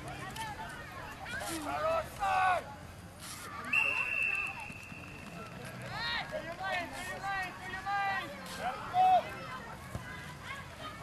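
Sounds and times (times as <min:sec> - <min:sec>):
referee's whistle: 0:03.7 - 0:05.5.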